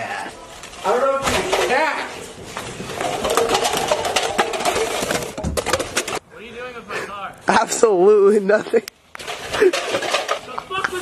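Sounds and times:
plastic cups clattering: 0.7 - 6.2, 9.2 - 11.0.

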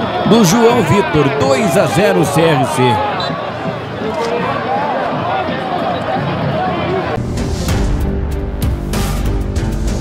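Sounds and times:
group shouting and cheering: 0.0 - 7.2.

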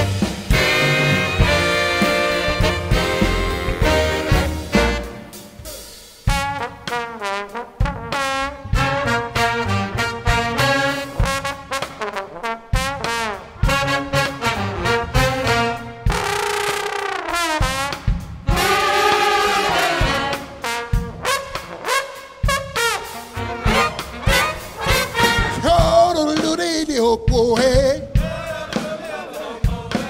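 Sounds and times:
big band jazz with trombone: 0.0 - 30.0.

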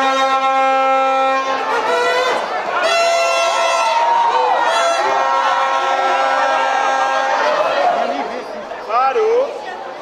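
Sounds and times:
spectator crowd chattering: 0.0 - 10.0.

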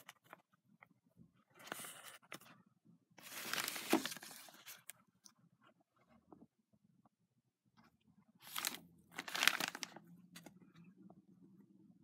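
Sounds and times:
paper bag crinkling: 3.2 - 4.8, 8.5 - 10.0.

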